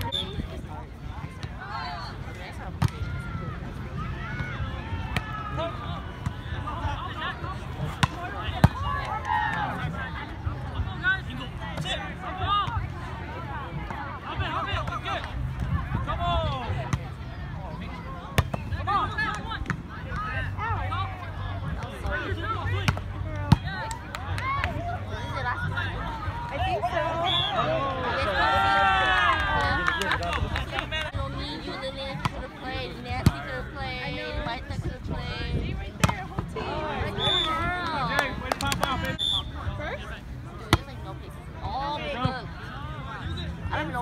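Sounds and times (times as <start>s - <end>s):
people calling and chattering: 0.0s - 44.0s.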